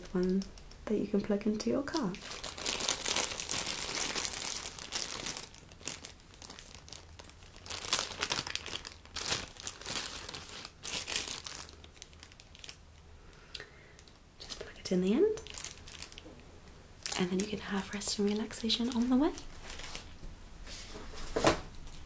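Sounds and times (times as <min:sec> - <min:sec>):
plastic bag crinkling: 0:00.0 - 0:13.4, 0:14.0 - 0:16.4, 0:17.0 - 0:20.2.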